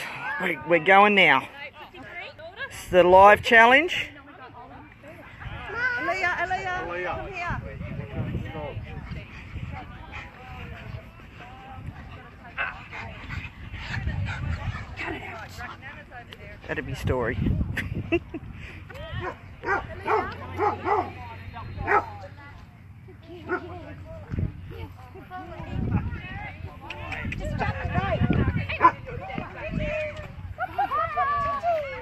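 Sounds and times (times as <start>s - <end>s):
people's voices: 0.0s - 32.0s
dogs barking and yipping: 19.2s - 22.2s, 23.4s - 23.9s, 28.6s - 29.3s.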